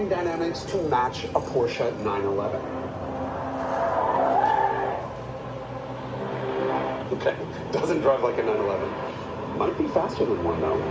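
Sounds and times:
road noise: 0.0 - 10.9
tyres squealing: 3.1 - 5.2.

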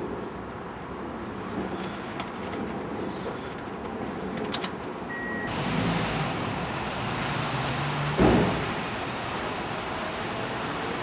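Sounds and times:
car engine and road noise: 0.0 - 11.0
short high beep: 5.1 - 5.5
loud thump: 8.1 - 8.9.

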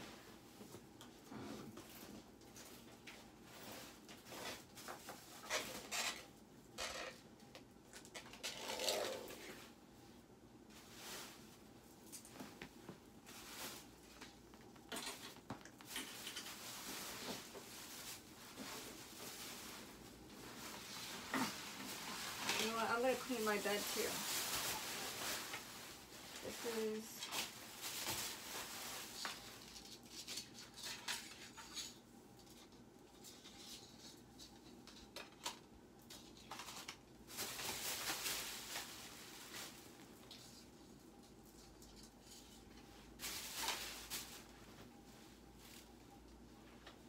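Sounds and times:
rustling of things handled: 0.0 - 47.0.

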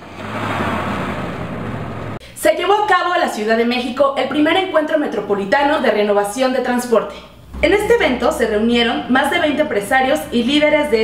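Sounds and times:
rush of noise: 0.0 - 2.2
truck engine hum: 0.0 - 2.2.

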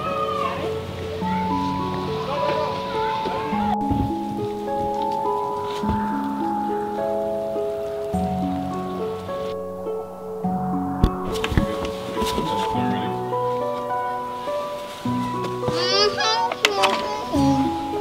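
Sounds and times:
slow instrumental music: 0.0 - 18.0.

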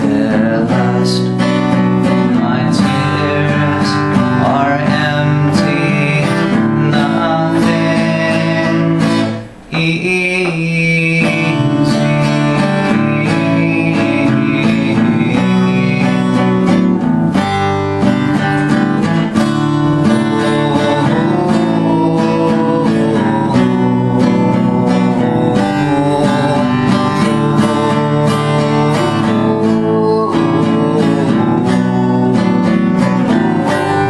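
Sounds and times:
acoustic guitar strumming: 0.0 - 34.0.

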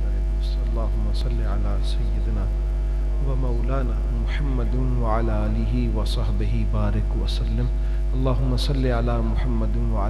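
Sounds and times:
loud mains hum: 0.0 - 10.0.

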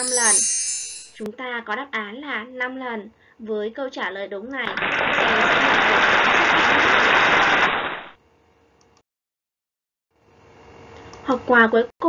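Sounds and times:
crowd applause: 4.7 - 8.1.

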